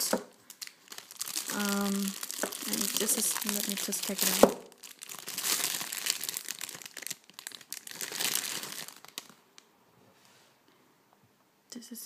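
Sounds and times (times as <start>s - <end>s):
plastic wrapping crinkling: 0.0s - 9.7s.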